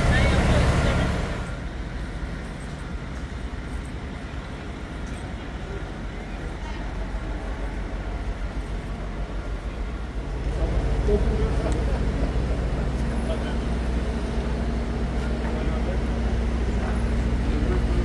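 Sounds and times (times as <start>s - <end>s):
street noise: 0.0s - 18.0s
vehicle engine running: 0.0s - 18.0s.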